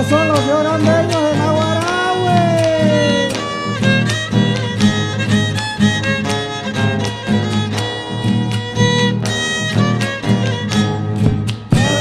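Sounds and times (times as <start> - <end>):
strummed acoustic guitars: 0.0 - 12.0
violin melody: 0.0 - 12.0
bass drum beat: 11.2 - 12.0.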